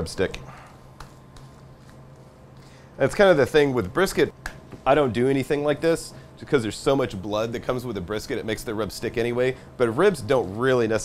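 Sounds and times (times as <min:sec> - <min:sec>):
low room tone hum: 0:00.0 - 0:11.0
gloved hand rubbing meat: 0:00.9 - 0:02.6.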